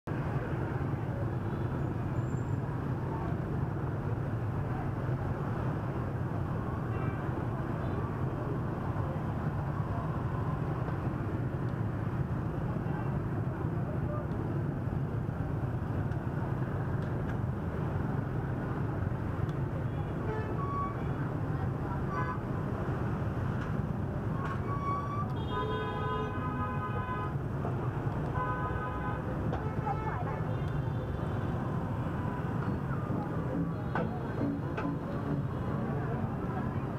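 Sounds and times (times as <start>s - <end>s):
motorbike traffic hum: 0.1s - 36.9s
short horn beeps: 24.6s - 25.9s.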